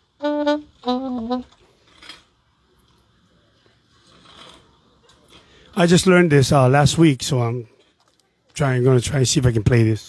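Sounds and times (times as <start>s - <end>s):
saxophone test notes: 0.0s - 1.8s.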